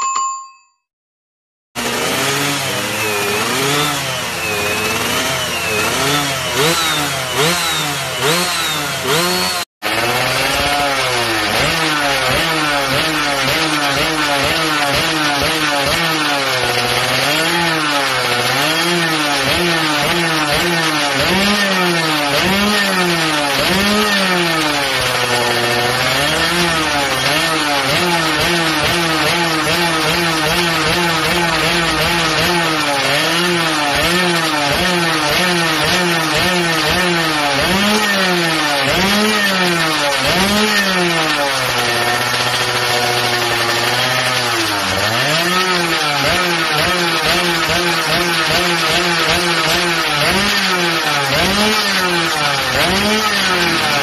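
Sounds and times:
motorcycle engines revving: 1.8s - 54.0s.

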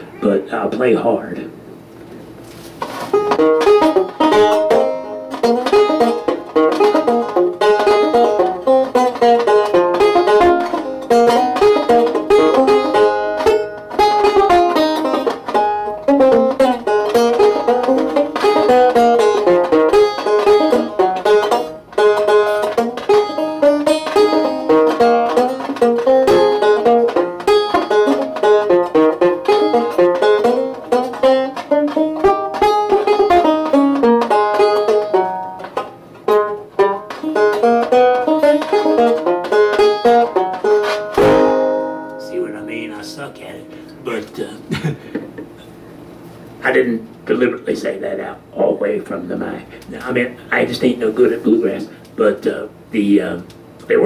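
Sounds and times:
banjo picking: 2.8s - 44.5s.

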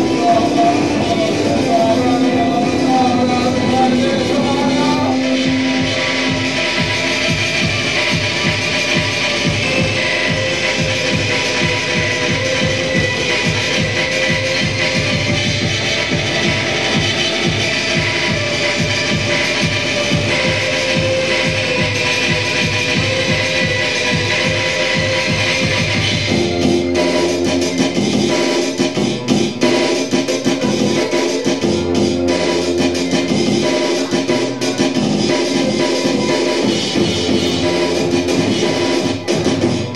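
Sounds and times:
fast drumbeat: 0.0s - 39.9s.

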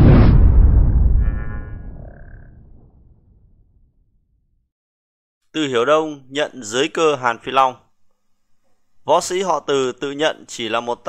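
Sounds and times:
deep cinematic boom: 0.0s - 4.6s.

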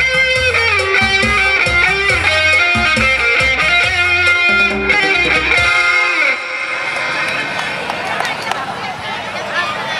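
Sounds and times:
live band with guitar: 0.0s - 7.9s
crowd chatter: 0.0s - 9.9s.

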